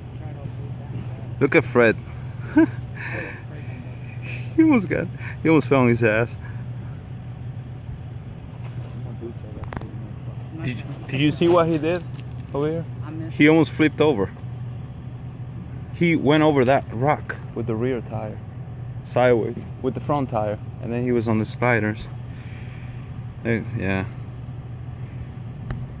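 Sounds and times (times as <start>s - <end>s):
truck engine running low: 0.0s - 26.0s.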